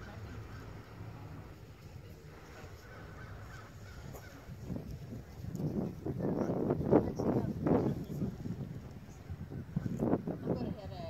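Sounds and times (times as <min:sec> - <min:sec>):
wind rumble on microphone: 0:00.0 - 0:11.0.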